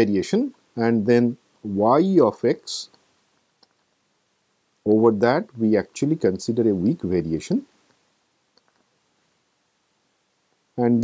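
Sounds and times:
man speaking: 0.0 - 3.0, 4.8 - 7.7, 10.8 - 11.0.

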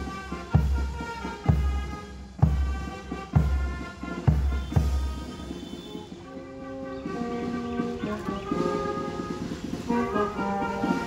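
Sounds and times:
brass band playing anthem: 0.0 - 11.0.

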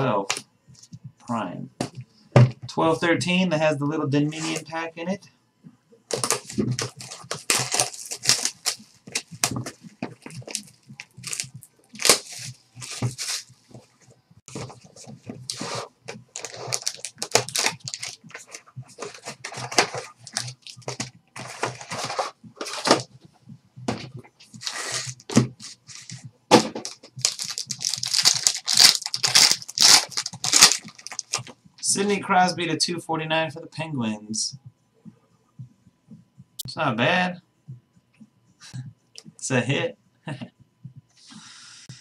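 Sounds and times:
wrapping crinkling and tearing: 6.1 - 9.6, 10.2 - 13.5, 15.5 - 23.1, 24.5 - 26.2, 26.8 - 31.5.

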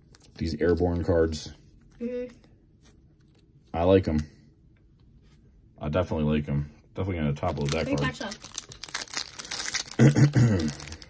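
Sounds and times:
foil wrapper crinkling and tearing: 7.4 - 11.0.

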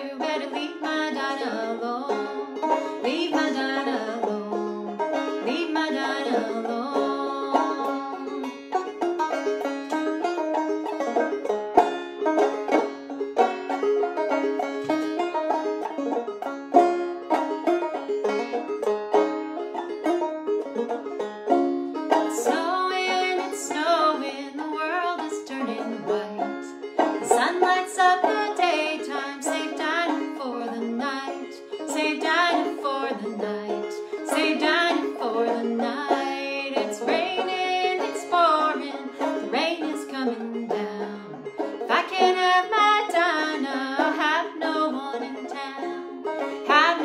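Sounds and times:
woman singing: 0.0 - 8.5, 22.3 - 47.0
banjo picking: 0.0 - 47.0.

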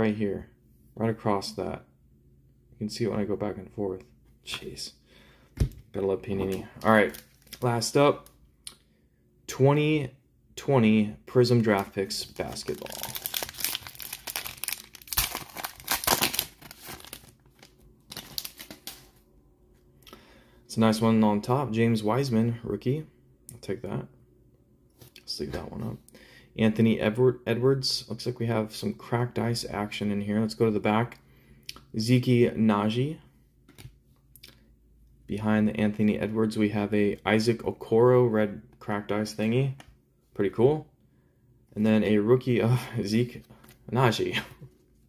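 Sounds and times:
trading cards clicking and rustling: 11.5 - 19.1
foil wrapper tearing and crinkling: 12.3 - 19.1.

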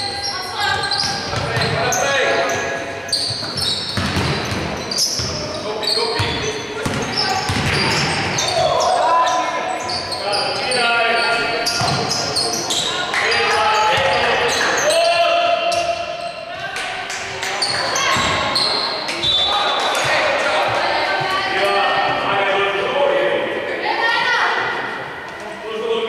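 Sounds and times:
basketball bouncing on hardwood floor: 4.0 - 4.7, 6.8 - 8.0.

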